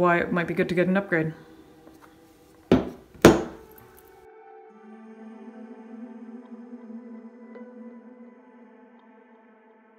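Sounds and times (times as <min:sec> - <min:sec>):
plastic device knocking on wooden table: 0:02.7 - 0:03.6.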